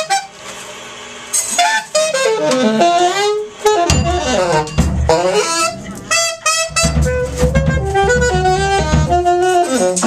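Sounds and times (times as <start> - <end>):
alto saxophone free jazz: 0.0 - 0.6, 1.4 - 10.0.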